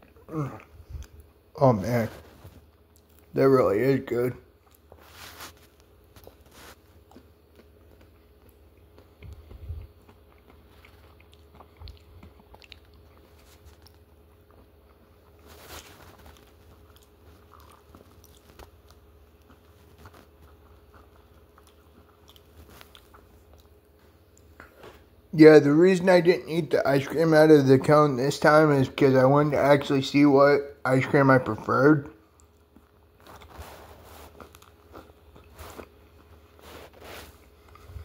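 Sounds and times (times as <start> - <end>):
man chewing with small crunches: 0.0 - 25.3, 31.4 - 38.0.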